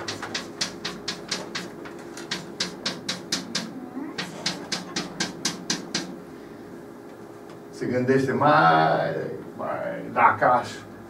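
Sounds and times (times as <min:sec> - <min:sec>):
chalk tapping on blackboard: 0:00.0 - 0:06.2.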